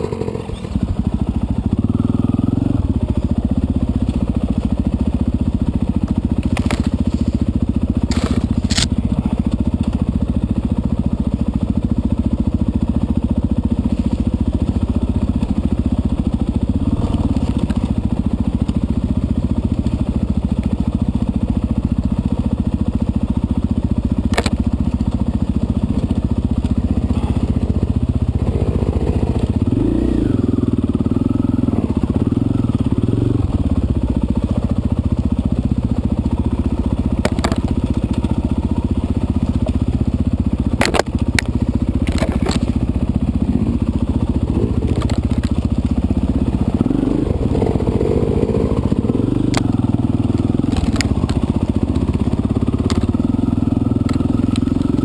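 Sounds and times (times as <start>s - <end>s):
dirt bike engine: 0.0s - 55.0s.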